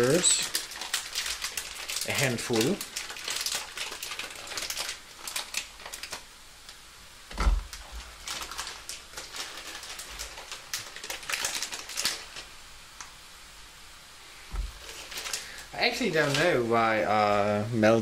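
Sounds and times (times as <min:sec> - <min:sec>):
sugary water boiling and popping: 0:00.0 - 0:17.0.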